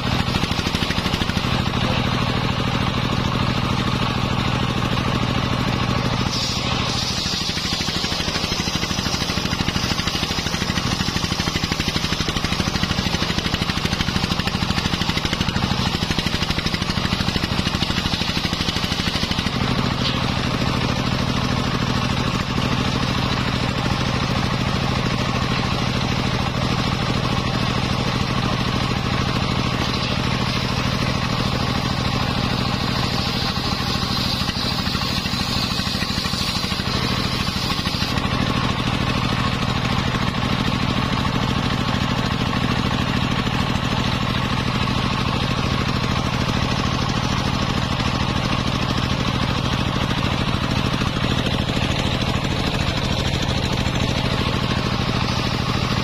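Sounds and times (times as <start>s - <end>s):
saw blade cutting wood: 0.0s - 41.2s, 44.0s - 56.0s
engine drone: 0.0s - 56.0s
high blade whine: 0.0s - 56.0s.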